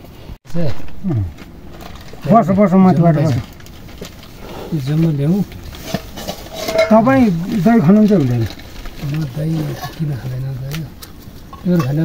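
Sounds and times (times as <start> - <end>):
man talking: 0.5 - 1.3, 2.2 - 3.5, 4.6 - 5.5, 6.8 - 11.0, 11.6 - 12.0
steel bowls clinking: 5.5 - 10.8, 11.4 - 12.0.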